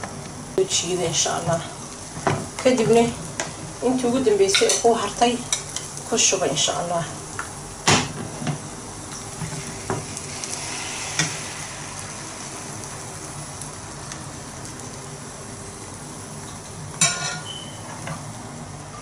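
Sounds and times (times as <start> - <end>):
egg sizzling in a frying pan: 0.0 - 19.0.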